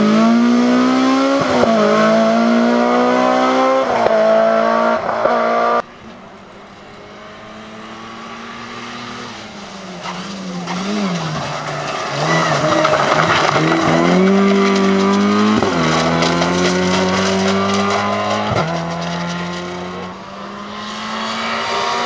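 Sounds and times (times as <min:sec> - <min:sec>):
rally car engine revving past: 0:00.0 - 0:05.8, 0:07.0 - 0:22.0
tyres on gravel: 0:05.8 - 0:21.0.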